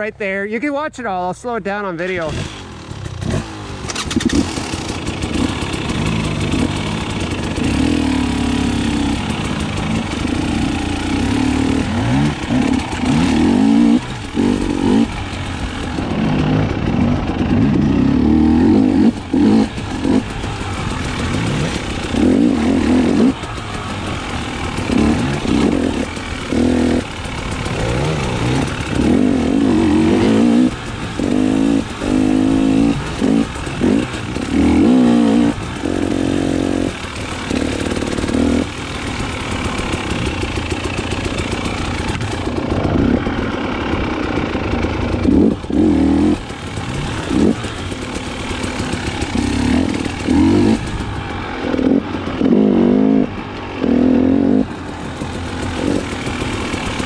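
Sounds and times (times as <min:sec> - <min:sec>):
motorcycle engine revving: 0:02.0 - 0:57.0.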